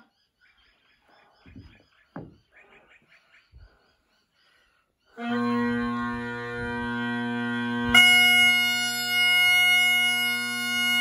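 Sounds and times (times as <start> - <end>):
bagpipe handling thuds: 5.8 - 11.0.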